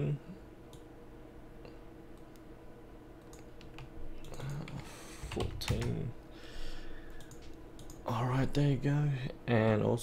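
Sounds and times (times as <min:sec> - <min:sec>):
low room hum: 0:00.0 - 0:10.0
computer mouse clicks: 0:03.2 - 0:06.0, 0:07.1 - 0:08.0.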